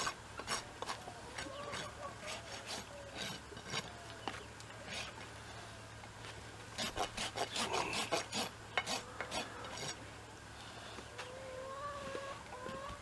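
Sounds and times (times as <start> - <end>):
rasp filing hoof: 0.0 - 3.9, 6.8 - 10.0
chicken calling: 0.9 - 3.2, 11.2 - 13.0.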